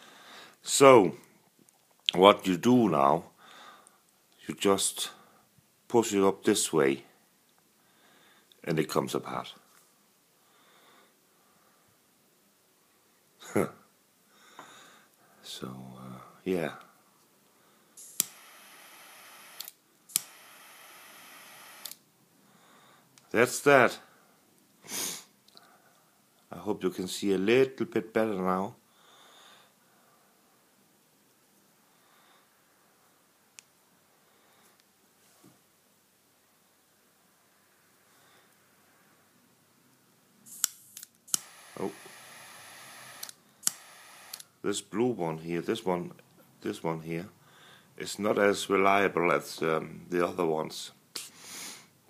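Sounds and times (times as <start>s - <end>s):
high hiss of gas: 18.0s - 22.0s, 40.5s - 44.4s
lighter igniter click: 19.6s - 20.4s, 43.2s - 44.4s.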